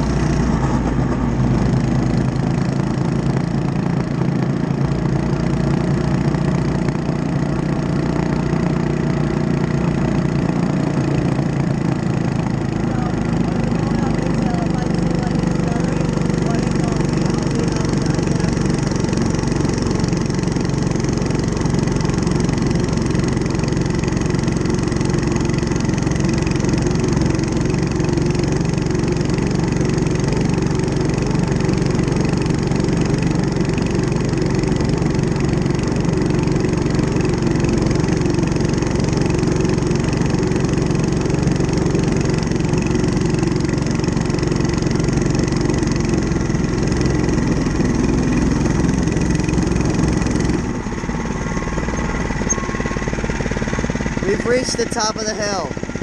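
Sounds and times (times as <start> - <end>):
small bike engine running: 0.0 - 56.0.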